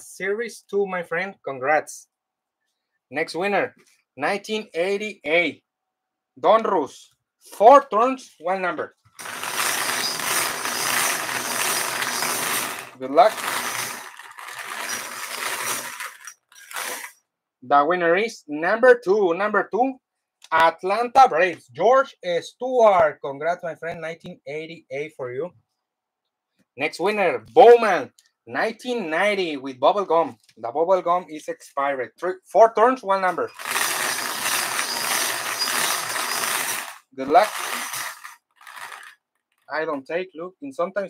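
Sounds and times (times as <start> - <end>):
balls rattling in bingo cage: 9.2 - 17.2, 33.5 - 39.7.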